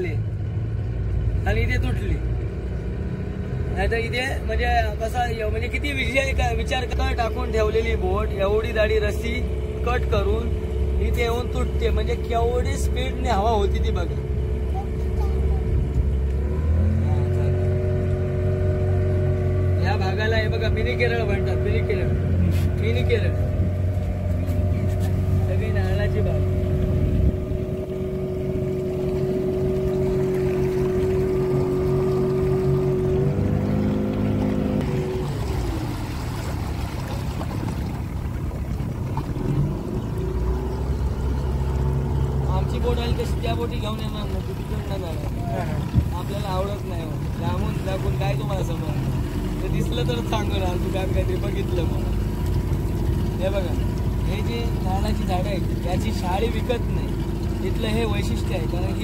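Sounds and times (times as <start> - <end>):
boat motor running: 0.0 - 59.0.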